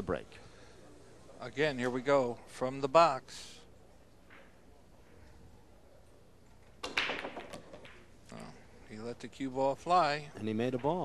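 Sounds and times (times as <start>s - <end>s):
billiard balls clicking: 6.4s - 8.5s, 10.4s - 11.0s
pool cue ball break crack: 6.8s - 8.2s.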